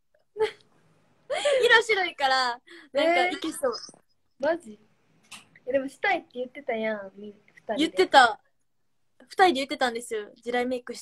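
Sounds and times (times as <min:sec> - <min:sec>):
young woman talking: 0:05.6 - 0:08.5.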